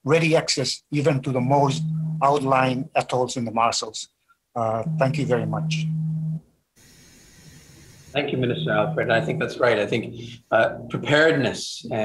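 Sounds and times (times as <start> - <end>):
man's voice holding low note: 0.1 - 4.0, 4.6 - 5.9, 8.2 - 12.0
faint line hiss: 6.7 - 12.0.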